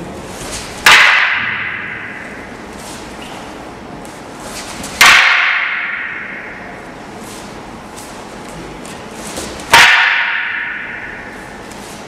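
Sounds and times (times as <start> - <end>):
wooden staffs clashing: 0.3 - 12.0.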